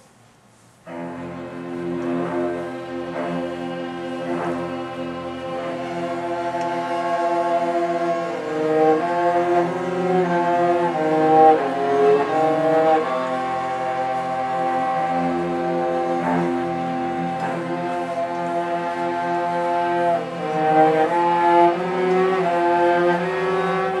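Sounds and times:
string orchestra playing: 0.8 - 24.0.

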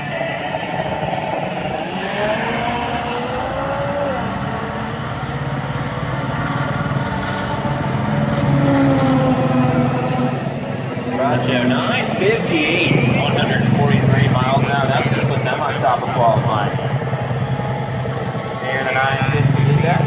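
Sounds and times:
car engines running: 0.0 - 20.0
engine revving: 0.0 - 20.0.

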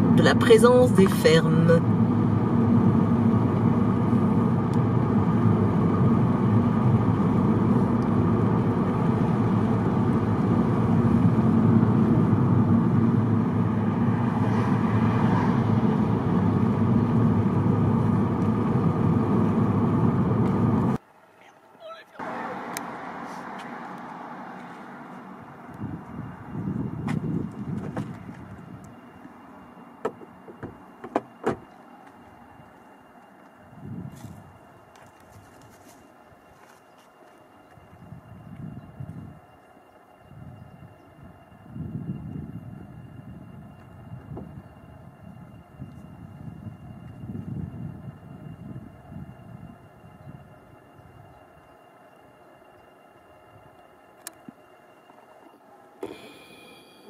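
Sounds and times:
car road and engine rumble: 0.0 - 57.0
outdoor background noise: 0.0 - 57.0.

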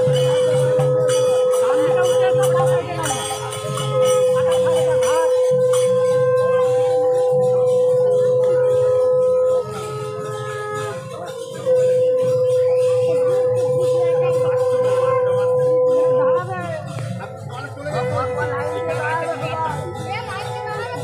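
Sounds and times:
conch shell blasts: 0.0 - 16.8.

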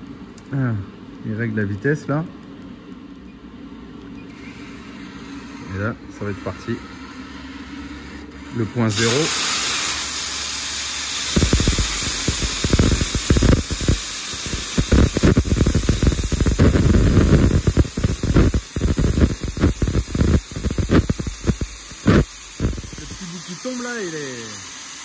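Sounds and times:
plasma torch hissing: 8.5 - 25.0
plasma arc crackling and popping: 8.9 - 25.0.

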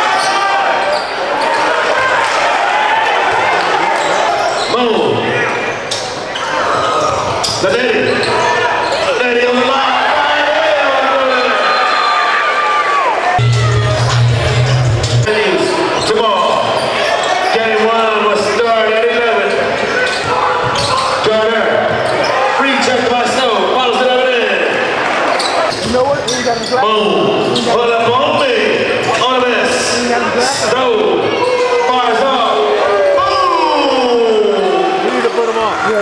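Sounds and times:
echoing voices in a hall: 0.0 - 36.0.

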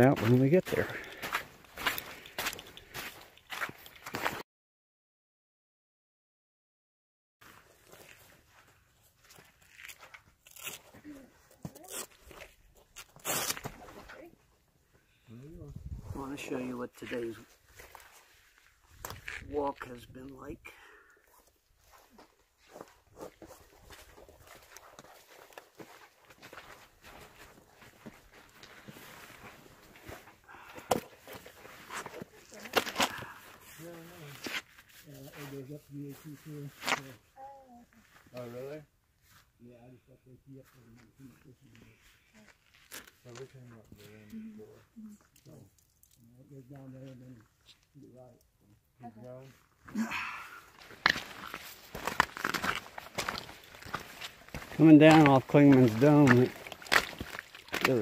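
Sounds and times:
rustling and tugging of boot: 50.7 - 58.0
person speaking: 54.7 - 56.6.

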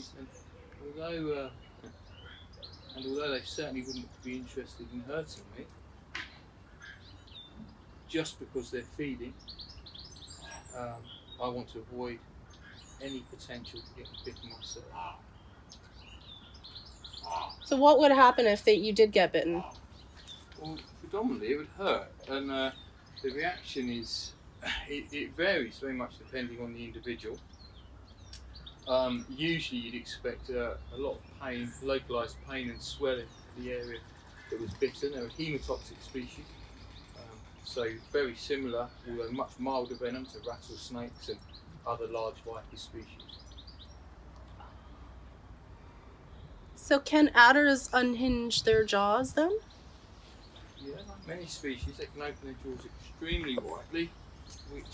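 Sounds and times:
low steady background noise: 0.0 - 54.9
small birds chirping: 0.0 - 54.9.

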